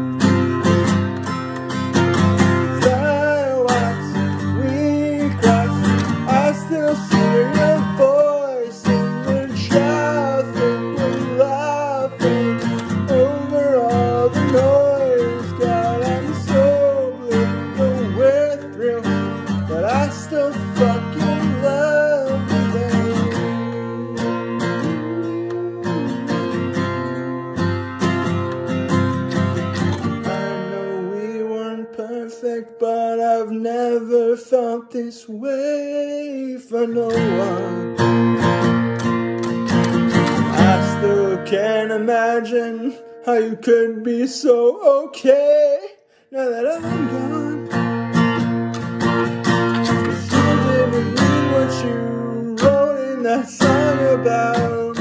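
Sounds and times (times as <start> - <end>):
acoustic guitar strumming: 0.0 - 34.8, 35.5 - 55.0
man singing: 1.9 - 27.3, 29.8 - 38.6, 39.9 - 55.0.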